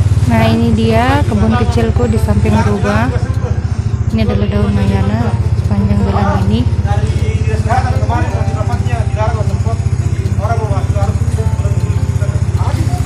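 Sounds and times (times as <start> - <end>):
small engine running: 0.0 - 13.0.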